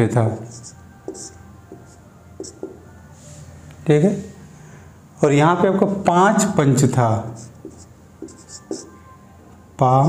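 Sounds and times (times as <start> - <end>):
marker writing on whiteboard: 0.4 - 2.8, 7.3 - 9.0.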